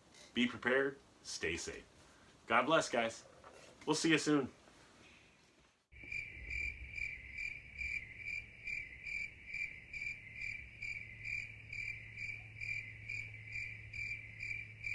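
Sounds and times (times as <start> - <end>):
cricket chirping: 5.9 - 14.9.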